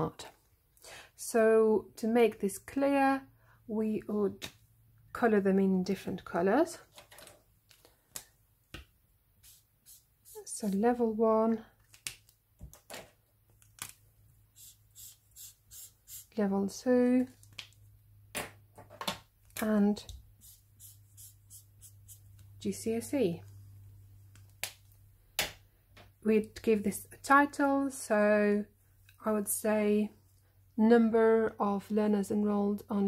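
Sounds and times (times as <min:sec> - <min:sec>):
felt-tip marker scratching paper: 0:14.6 - 0:16.4, 0:20.4 - 0:22.3.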